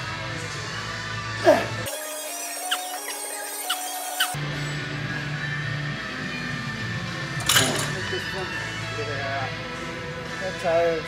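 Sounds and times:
squeaky rising sounds: 1.9s - 4.4s.

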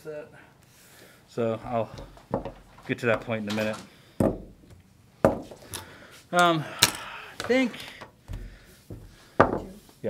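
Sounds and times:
spools knocking on wooden bench: 2.0s - 3.3s, 8.2s - 9.8s.

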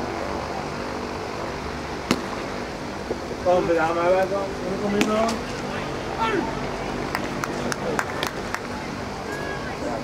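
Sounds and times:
low mechanical drone: 0.0s - 10.0s
ballpark crowd noise: 2.0s - 10.0s.

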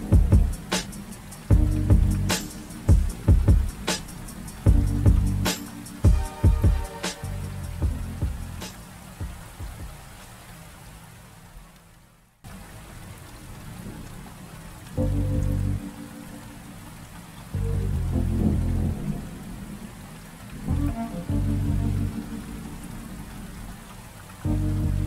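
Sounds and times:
deep low music notes: 0.0s - 8.8s, 14.8s - 23.6s, 24.4s - 25.0s
steady rain falling: 0.0s - 25.0s.

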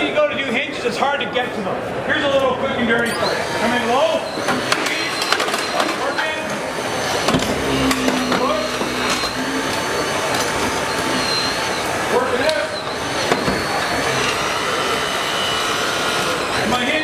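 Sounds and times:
hydraulic rescue tool motor: 3.3s - 17.0s.

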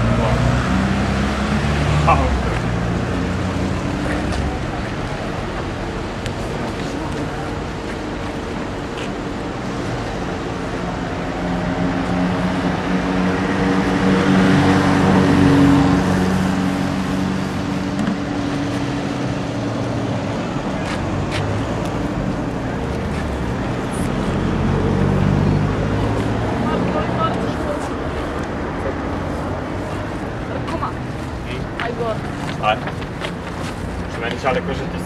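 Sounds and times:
vehicle engine humming: 0.0s - 35.0s.

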